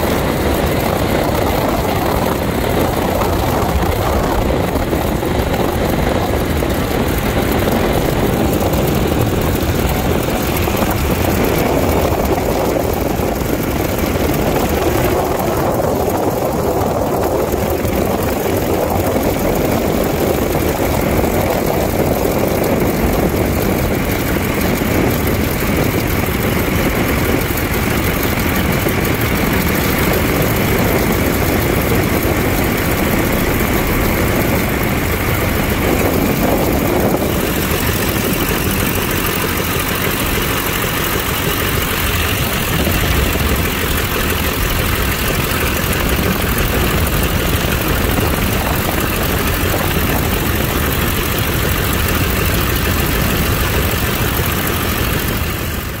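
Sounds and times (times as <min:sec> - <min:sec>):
radial aircraft engine idling: 0:00.0 - 0:56.0.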